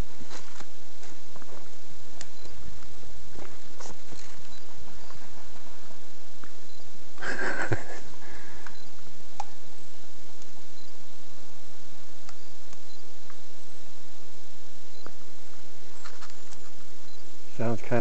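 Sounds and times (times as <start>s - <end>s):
footsteps on dirt trail: 0.0s - 1.8s, 2.5s - 6.6s
handheld camera rustling: 0.2s - 6.6s, 15.5s - 16.9s.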